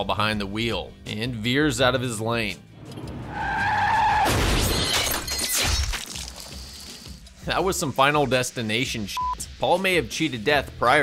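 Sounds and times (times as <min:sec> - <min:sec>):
tyre screech: 0:03.1 - 0:05.7
crunching metal: 0:03.6 - 0:07.2
shattering glass: 0:04.2 - 0:07.0.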